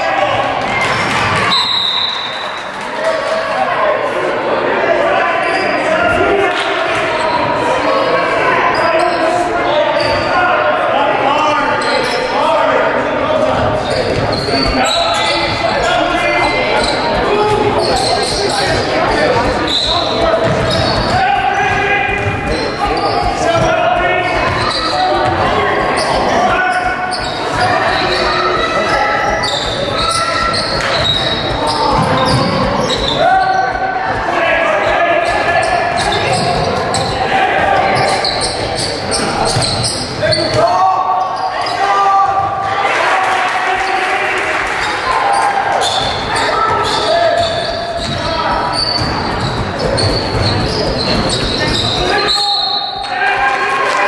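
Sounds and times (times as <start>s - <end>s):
indistinct shouts and chatter: 0.0s - 54.0s
ball bouncing on hardwood court: 16.8s - 37.2s, 45.8s - 52.2s.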